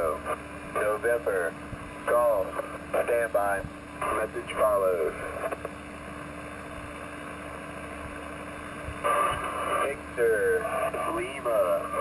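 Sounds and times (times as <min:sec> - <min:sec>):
faint low hum: 0:00.0 - 0:12.0
shortwave radio static hiss: 0:00.0 - 0:12.0.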